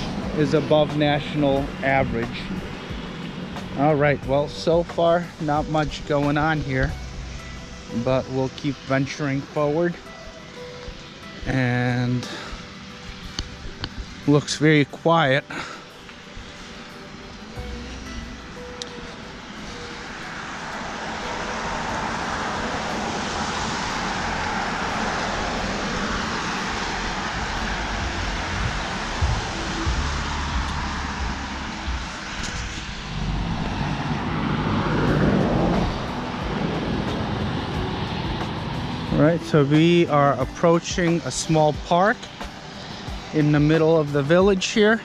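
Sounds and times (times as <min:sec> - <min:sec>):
road traffic passing: 0:00.0 - 0:45.0.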